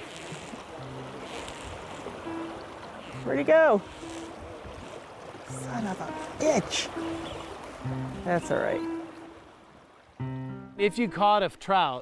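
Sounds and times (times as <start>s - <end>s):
river water rushing: 0.0s - 11.2s.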